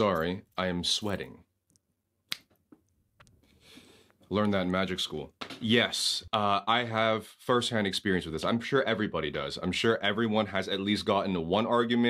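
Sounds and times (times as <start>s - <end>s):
finger snap: 2.3s - 2.6s.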